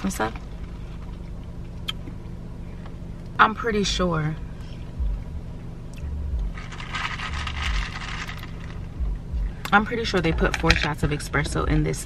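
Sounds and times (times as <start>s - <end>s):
straw stirring ice in cup: 6.6s - 8.8s.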